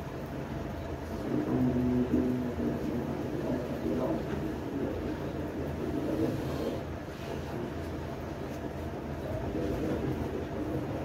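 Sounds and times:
low room rumble: 0.0 - 11.0
muffled murmuring voices: 1.0 - 11.0.

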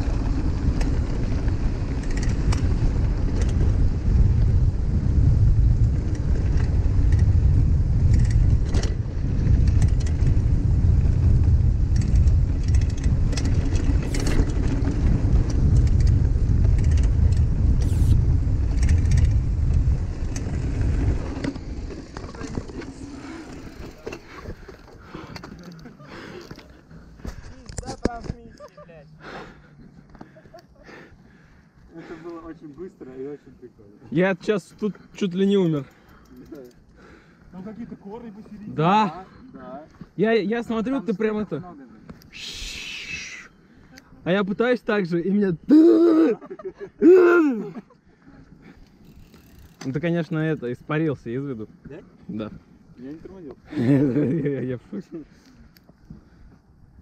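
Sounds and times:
wind buffeting microphone: 0.0 - 25.3
bike tyre rumble: 0.0 - 28.5, 45.8 - 57.0
bike clicks: 0.0 - 28.8, 34.6 - 38.7, 48.5 - 50.9, 55.1 - 56.9.

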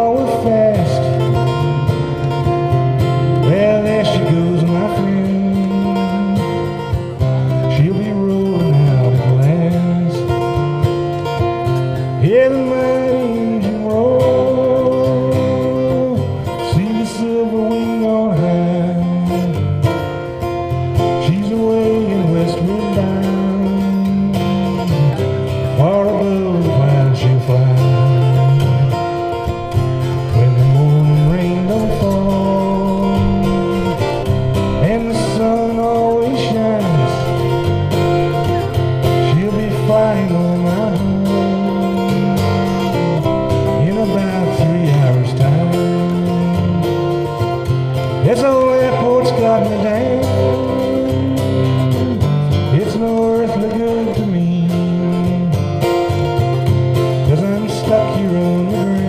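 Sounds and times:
man singing long held notes: 0.0 - 2.2, 3.2 - 10.7, 12.2 - 19.6, 21.0 - 29.3, 30.1 - 47.0, 48.2 - 55.8, 57.2 - 59.0
strummed acoustic guitar: 0.0 - 59.0.

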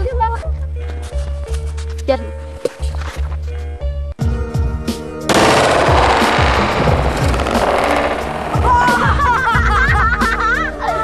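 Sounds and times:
firecracker bangs: 5.3 - 9.8
music with heavy beat: 5.3 - 9.9.

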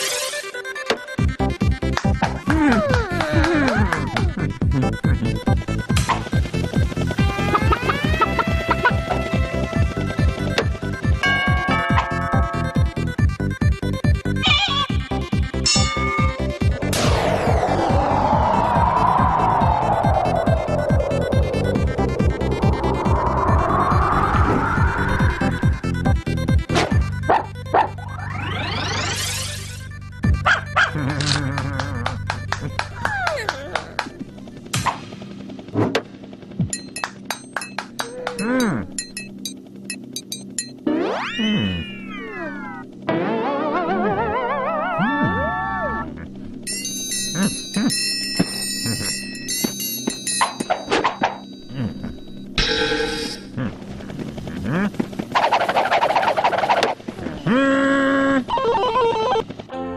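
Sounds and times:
playful cartoon music: 0.0 - 59.9
high chiming notes: 15.6 - 18.7, 46.7 - 53.7
rising whistling glide: 16.0 - 26.6, 55.4 - 57.0
sudden low drop: 16.3 - 27.2
noisy bursts: 16.7 - 26.8
cartoon dog barks: 27.2 - 28.0, 30.4 - 31.6.

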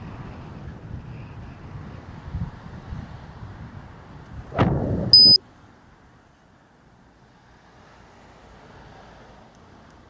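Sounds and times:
road and wind noise: 0.0 - 10.0
short high electronic beep: 5.2 - 5.4.

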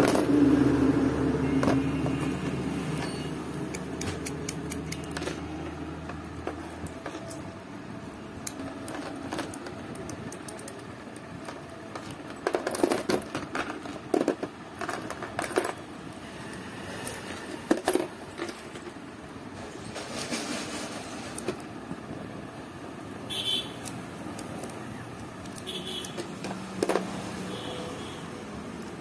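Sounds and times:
keys and lock clicking: 1.6 - 19.0, 23.8 - 28.1.

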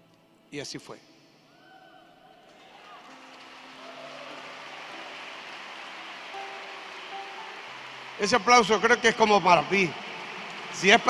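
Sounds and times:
crowd applauding: 2.4 - 11.0.

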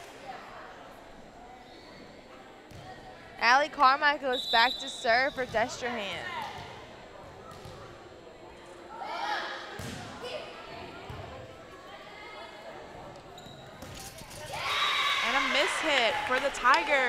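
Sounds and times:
crowd cheering: 14.5 - 17.0
players and spectators calling out: 14.5 - 17.0.

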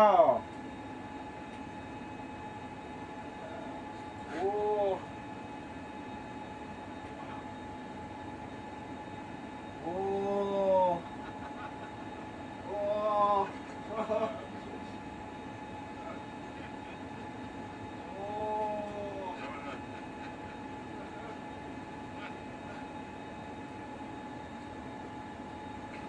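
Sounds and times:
cabin fans humming: 0.0 - 26.0.

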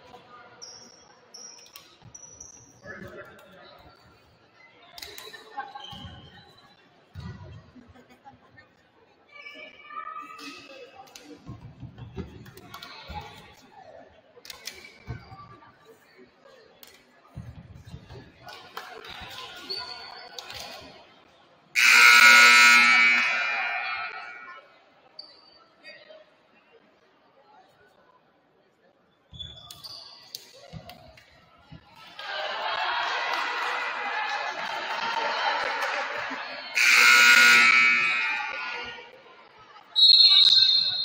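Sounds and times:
scoreboard horn buzzing blast: 21.8 - 24.5, 36.8 - 38.9.

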